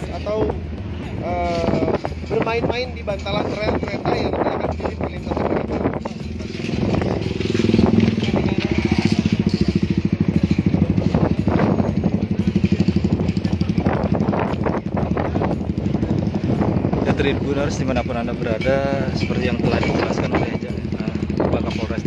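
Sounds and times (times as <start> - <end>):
motorcycle engine idling: 3.6 - 22.0.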